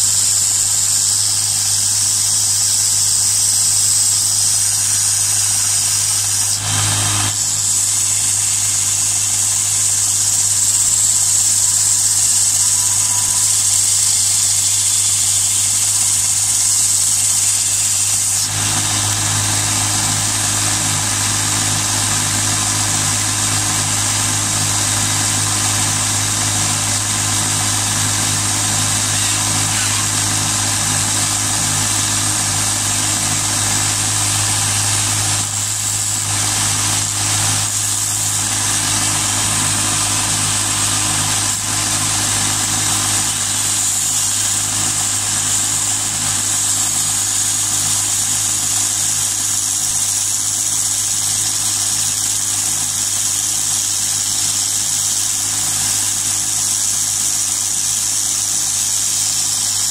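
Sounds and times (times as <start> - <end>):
belt sander running: 0.0 - 59.9
drill spinning: 0.0 - 59.9
sanding hiss: 0.0 - 59.9.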